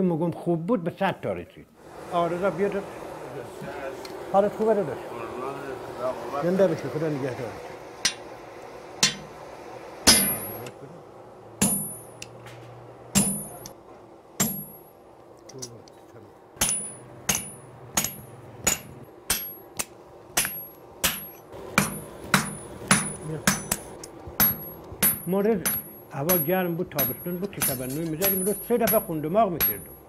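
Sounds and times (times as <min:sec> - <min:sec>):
hammer striking anvil: 0:08.0 - 0:08.3, 0:09.0 - 0:09.4, 0:10.1 - 0:10.7, 0:11.6 - 0:12.4, 0:13.1 - 0:13.7, 0:14.4 - 0:14.9, 0:16.6 - 0:30.0.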